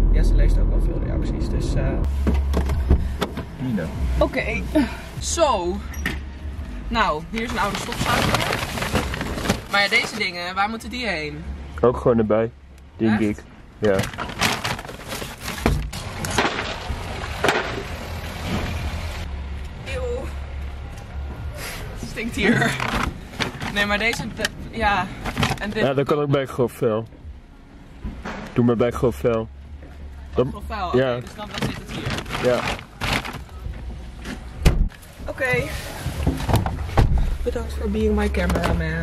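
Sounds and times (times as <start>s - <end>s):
plastic bags rustling: 7.4s - 10.4s, 13.9s - 17.7s, 22.4s - 24.0s, 31.4s - 33.6s.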